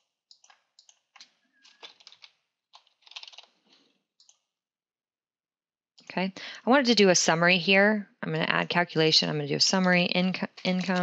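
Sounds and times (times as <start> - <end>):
faint keyboard typing: 0.0 - 4.5, 10.3 - 11.0.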